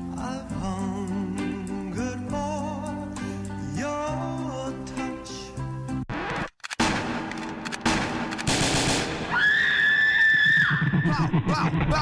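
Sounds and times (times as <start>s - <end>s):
gunshot bangs: 6.8s - 9.3s.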